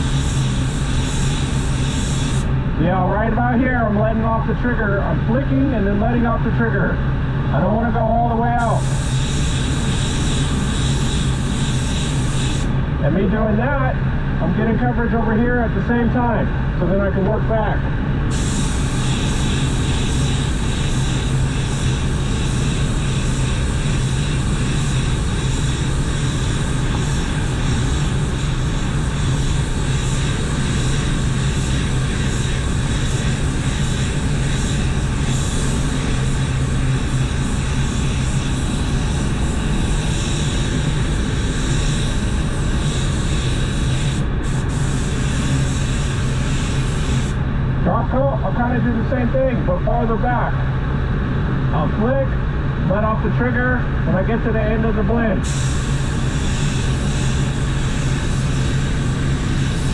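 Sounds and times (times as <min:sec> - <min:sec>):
paint spray gun hissing: 0:00.0 - 0:02.6, 0:08.5 - 0:12.8, 0:18.2 - 0:47.4, 0:55.4 - 0:59.9
ventilation hum: 0:00.0 - 0:59.9.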